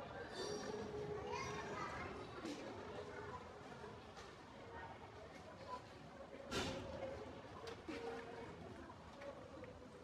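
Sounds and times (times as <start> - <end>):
indistinct chatter of voices: 0.0 - 4.1.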